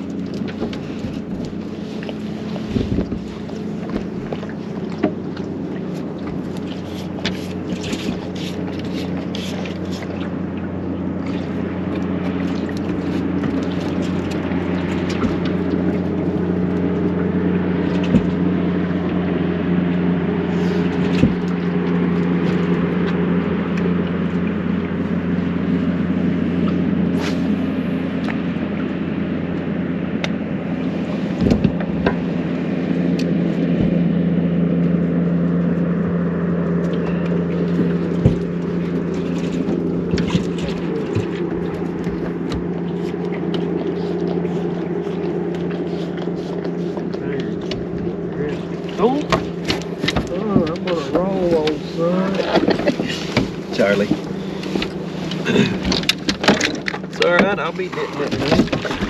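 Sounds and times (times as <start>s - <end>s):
boat motor humming: 0.0s - 59.0s.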